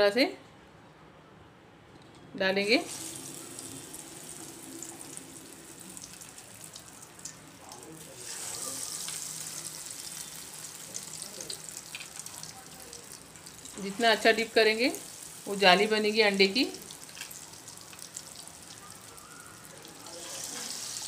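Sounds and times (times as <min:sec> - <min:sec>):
chicken sizzling in hot oil: 0:02.8 - 0:21.0.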